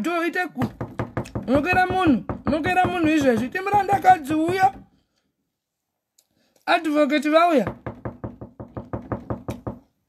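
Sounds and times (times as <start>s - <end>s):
rapid even knocking: 0.6s - 5.0s, 7.7s - 9.9s.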